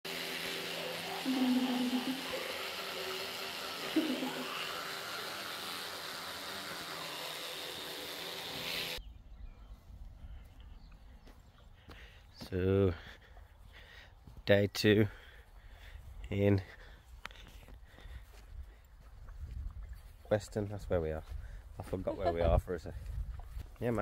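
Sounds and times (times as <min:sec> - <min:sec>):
electric toothbrushes buzzing: 0:00.0 - 0:09.0
faint low wind rumble: 0:18.1 - 0:23.8.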